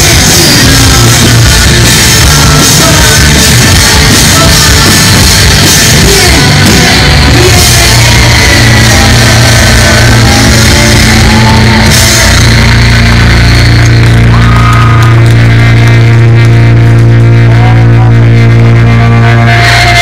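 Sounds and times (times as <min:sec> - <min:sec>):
distorted punk rock band: 0:00.0 - 0:20.0
guitar feedback tones: 0:00.0 - 0:20.0.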